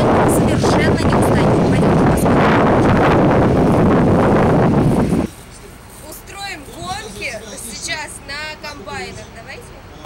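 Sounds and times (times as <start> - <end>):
wind buffeting microphone: 0.0 - 5.3.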